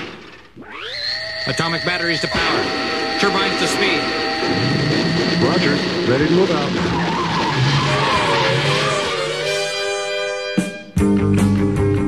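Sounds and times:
jet turbine rushing: 0.0s - 10.2s
tyres screeching: 0.0s - 10.4s.

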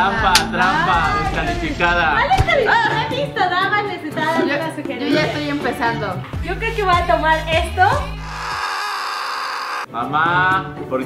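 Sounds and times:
low background music: 0.0s - 8.3s, 9.9s - 11.0s
high whining comedy sound effect: 8.2s - 9.9s.

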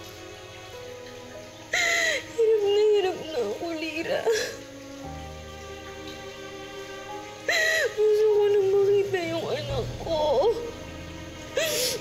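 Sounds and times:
soft background music: 0.0s - 12.0s
woman sobbing: 1.7s - 2.4s, 4.2s - 4.7s, 7.5s - 8.2s, 11.6s - 12.0s.

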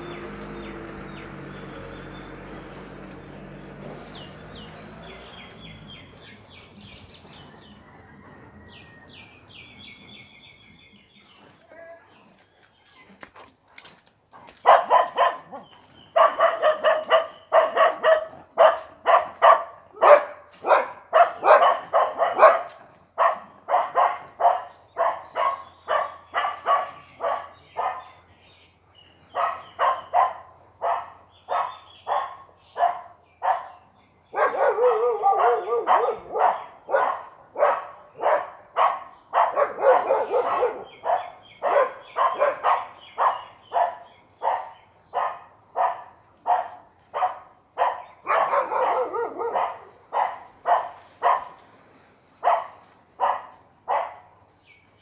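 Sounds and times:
birds chirping faintly: 0.0s - 55.0s
dog barking: 14.5s - 28.2s, 29.3s - 51.6s, 52.4s - 54.3s.

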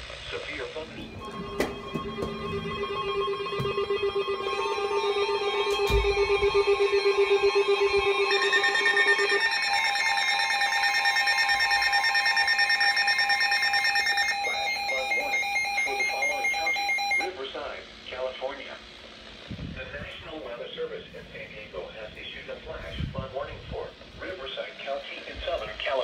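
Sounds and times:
pulsing alarm beeps: 0.9s - 17.3s.

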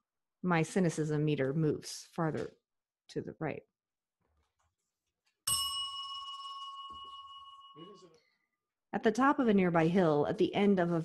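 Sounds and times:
small bell ringing: 5.4s - 8.4s.

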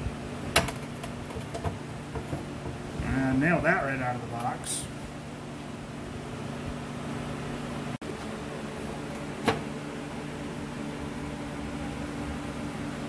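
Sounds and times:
shop machinery humming: 0.0s - 13.0s.

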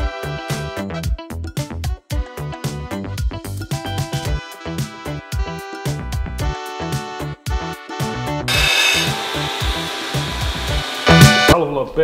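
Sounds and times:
background music with beat: 0.0s - 11.6s
belt grinder grinding metal: 8.5s - 11.6s.

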